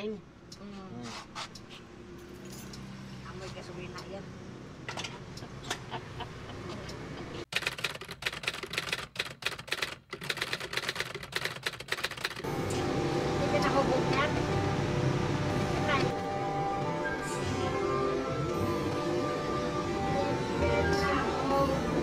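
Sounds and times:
typewriter key clacks: 0:07.5 - 0:12.4
music: 0:12.5 - 0:22.0.

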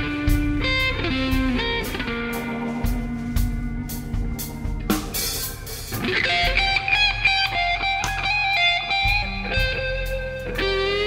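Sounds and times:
blues-rock band playing: 0:00.0 - 0:11.0
cymbal wash: 0:00.0 - 0:11.0
electric guitar lead: 0:00.0 - 0:11.0.

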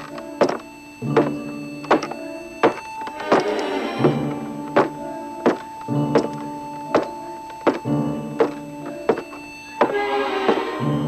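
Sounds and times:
footsteps on wooden boardwalk: 0:00.0 - 0:10.9.

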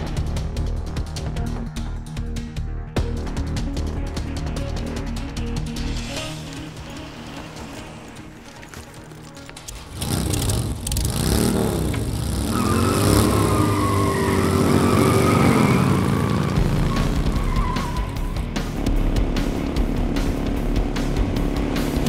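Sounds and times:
tyre squealing: 0:07.4 - 0:18.4
motorcycle engine revving: 0:09.7 - 0:22.0.

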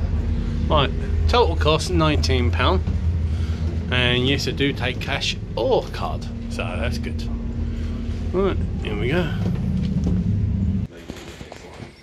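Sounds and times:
low rumble: 0:00.0 - 0:10.9.

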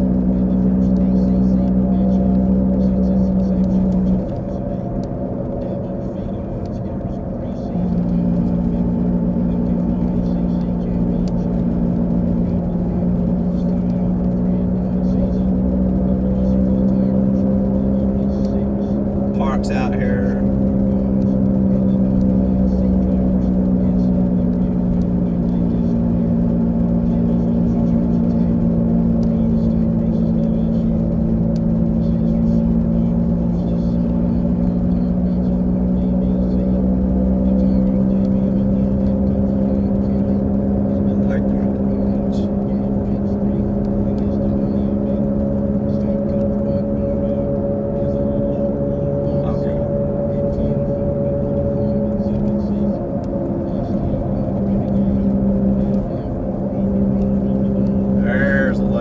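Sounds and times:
car engine drone from inside: 0:00.0 - 0:59.0.

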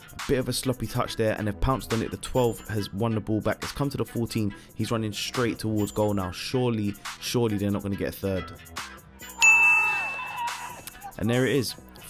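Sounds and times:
background music: 0:00.0 - 0:12.0
bright chime: 0:09.4 - 0:10.8.

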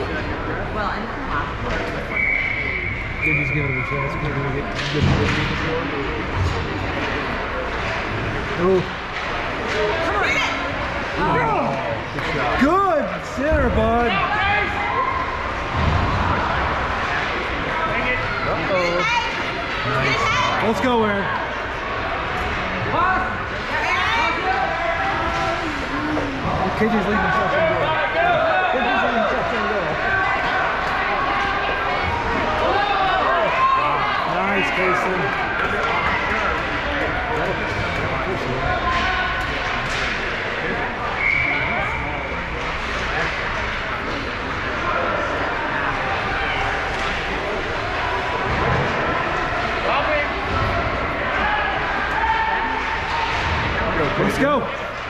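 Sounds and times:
murmur of overlapping voices: 0:00.0 - 0:55.0.

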